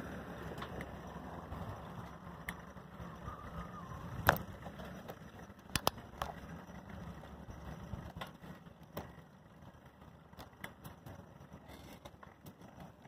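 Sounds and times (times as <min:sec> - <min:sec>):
rumble of wheels on paved road: 0:00.0 - 0:13.0
wind: 0:00.0 - 0:13.0
sharp clicks: 0:05.7 - 0:06.4.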